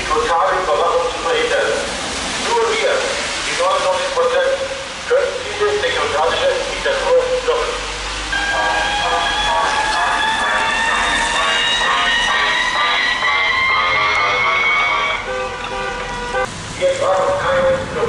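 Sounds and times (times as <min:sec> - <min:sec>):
cars passing on wet street: 0:00.0 - 0:18.0
amplified voice or music: 0:05.5 - 0:15.3
long rising tone: 0:08.3 - 0:15.3.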